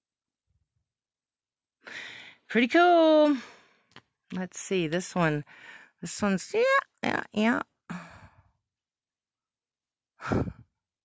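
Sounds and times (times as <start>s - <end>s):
woman sighing: 7.9s - 8.5s, 10.2s - 10.7s.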